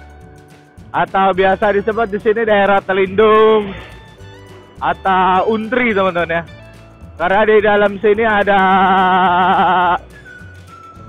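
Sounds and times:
man holding a wavering vowel: 8.6 - 10.2.

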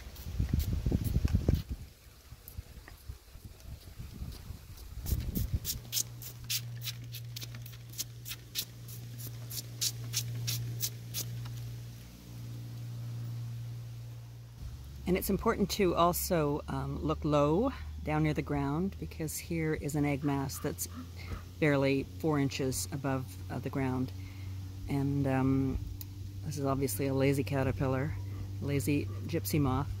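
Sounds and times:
low hum: 0.0 - 30.0
spray bottle squirting: 4.8 - 11.6.

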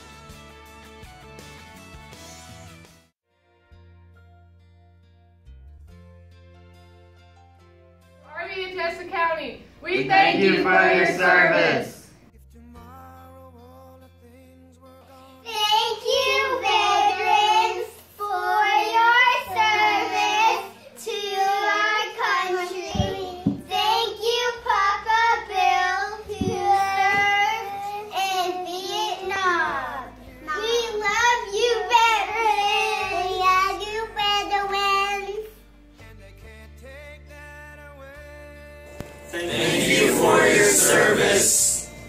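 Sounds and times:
girls singing together: 9.8 - 12.1, 15.5 - 33.8.

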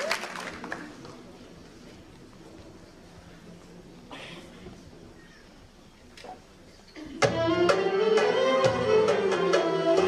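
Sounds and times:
folk music ensemble with strings: 0.9 - 10.0.

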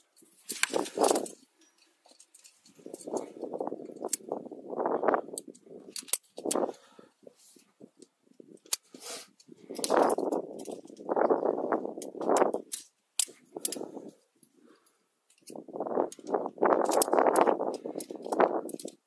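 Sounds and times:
climbing hardware clinking: 0.1 - 4.4.

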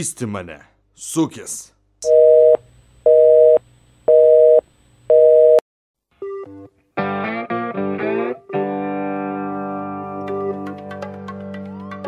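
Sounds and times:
telephone busy signal: 2.0 - 5.6.

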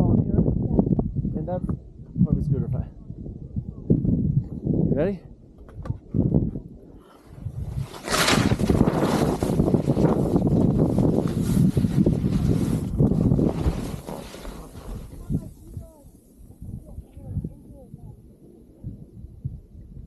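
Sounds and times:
wind rushing over microphone: 0.0 - 20.0
skis scraping on icy snow: 7.0 - 15.8.

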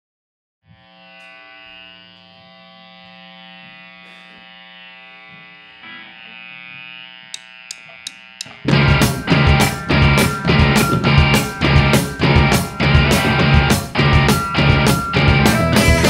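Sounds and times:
amplified instruments buzzing drone: 0.7 - 16.0.

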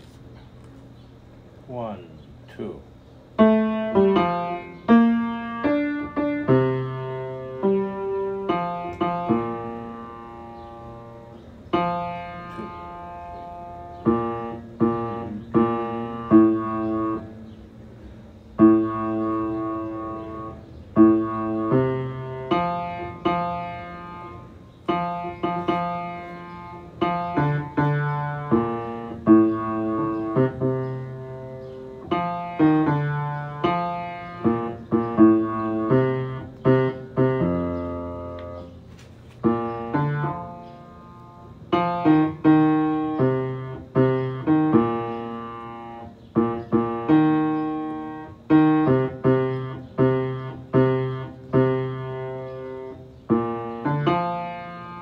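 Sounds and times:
piano playing a slow hymn: 3.4 - 55.0.

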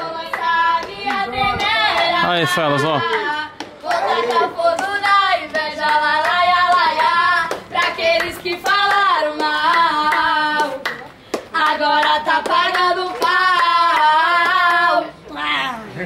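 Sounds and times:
sharp claps: 3.0 - 14.8.

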